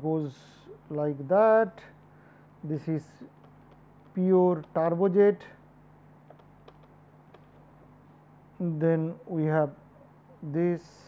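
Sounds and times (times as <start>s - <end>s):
steady low hum: 0.0s - 11.0s
stylus tapping on pen tablet: 3.3s - 4.8s, 6.2s - 7.7s.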